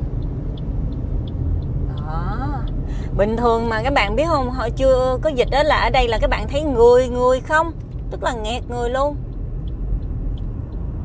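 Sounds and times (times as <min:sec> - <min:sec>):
car road and engine rumble: 0:00.0 - 0:11.0
faint ticks: 0:00.2 - 0:02.0, 0:09.0 - 0:11.0.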